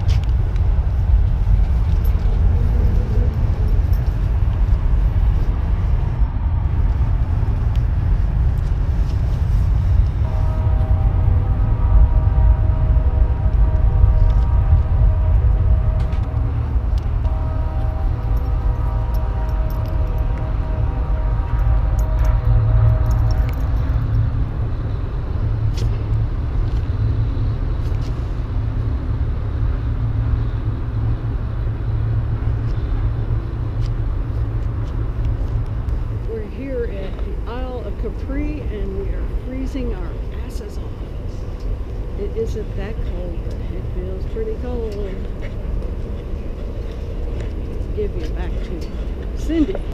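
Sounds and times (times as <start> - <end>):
pitched engine hum: 0.0 - 49.9
road traffic rumble: 0.0 - 49.9.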